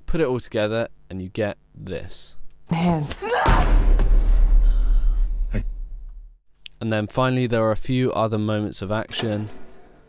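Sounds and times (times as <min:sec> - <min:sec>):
gunshot boom: 0:03.5 - 0:05.0.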